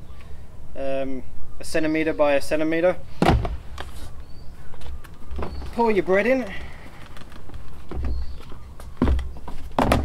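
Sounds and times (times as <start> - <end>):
bucket set down on wooden deck: 9.0 - 10.0.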